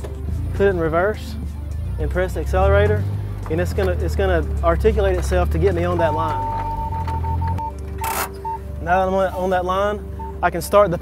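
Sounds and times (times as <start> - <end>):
low engine note: 0.0 - 11.0
electronic beeps: 6.1 - 8.7.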